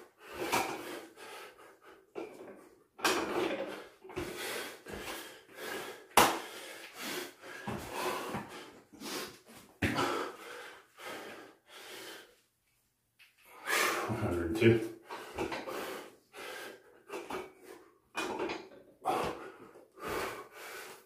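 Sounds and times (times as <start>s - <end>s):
man breathing hard: 0.1s - 2.4s, 3.5s - 12.4s, 13.4s - 14.2s, 15.0s - 18.0s, 19.0s - 21.0s.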